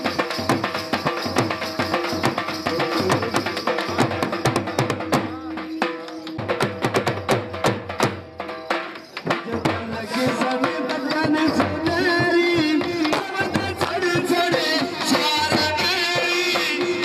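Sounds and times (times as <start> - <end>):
dhol drum dance rhythm: 0.0 - 17.0.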